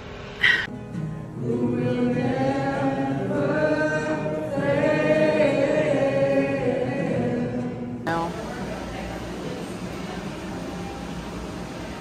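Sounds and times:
congregation singing: 1.3s - 8.1s.

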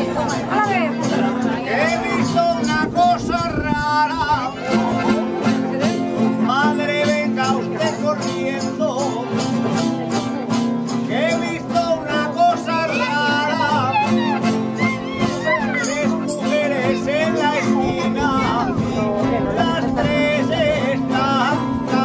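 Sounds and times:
accordion: 0.0s - 22.0s
strummed guitars: 0.0s - 22.0s
person singing ornamented lines: 11.0s - 22.0s.

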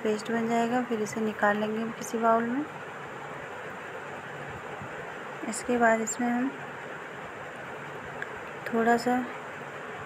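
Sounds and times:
steady background hiss: 0.0s - 10.0s.

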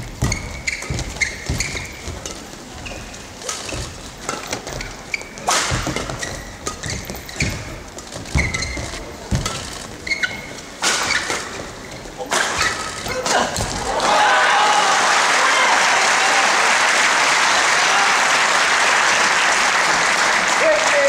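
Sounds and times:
shoe squeaks on court floor: 0.0s - 13.7s
crowd noise: 0.0s - 21.0s
racket striking shuttlecock: 3.4s - 7.7s, 10.8s - 11.6s.

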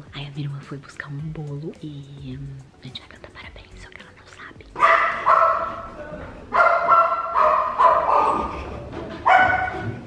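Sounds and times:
dog barking: 4.8s - 5.9s, 6.5s - 8.6s, 9.2s - 10.0s.

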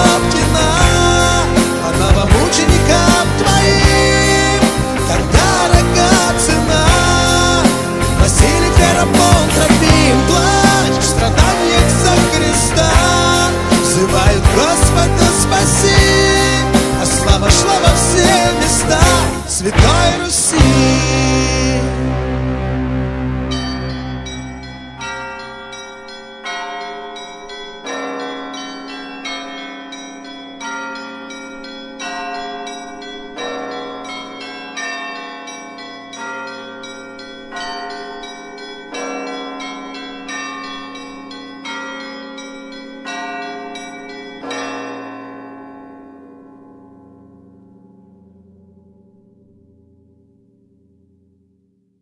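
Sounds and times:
church bells ringing: 0.0s - 51.2s.

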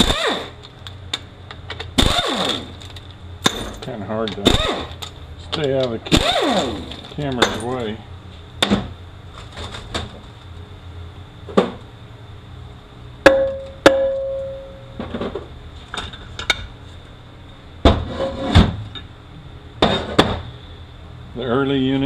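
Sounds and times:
metal clanks and knocks: 6.9s - 7.9s
ringing metal tone: 13.3s - 15.0s.

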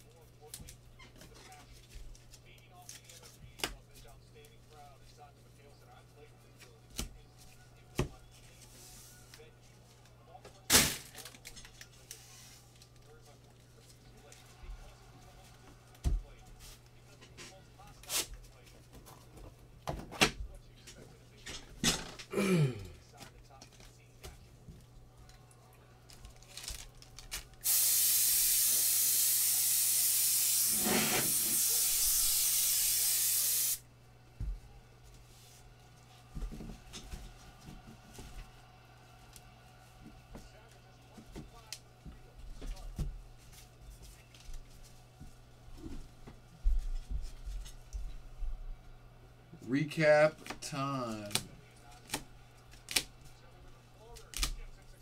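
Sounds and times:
loud steady hiss: 27.6s - 33.9s.

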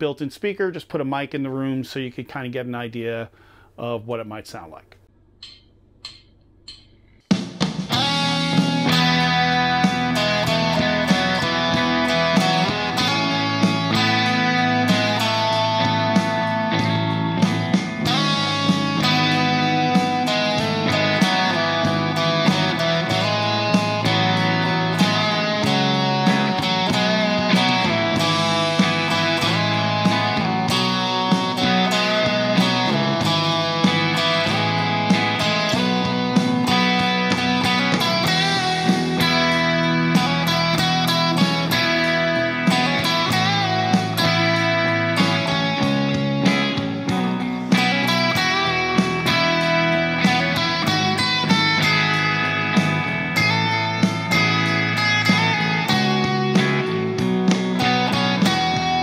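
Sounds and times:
backing track with steady beat: 5.4s - 59.0s
electric guitar playing: 7.8s - 59.0s.

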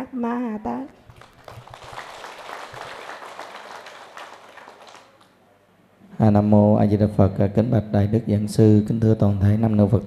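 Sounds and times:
crowd applauding: 1.0s - 5.4s.

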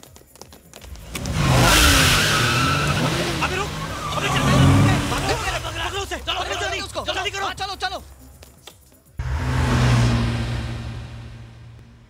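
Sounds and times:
car engine revving: 0.9s - 8.1s, 9.2s - 12.0s
tyres screeching: 0.9s - 8.2s.

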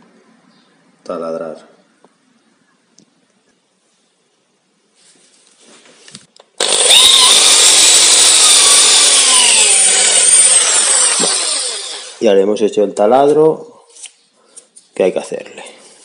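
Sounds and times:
electric drill drilling metal: 6.6s - 12.2s.

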